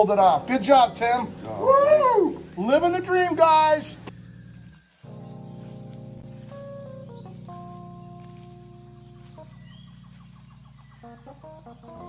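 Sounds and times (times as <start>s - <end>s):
background music sustained chords: 0.0s - 12.0s.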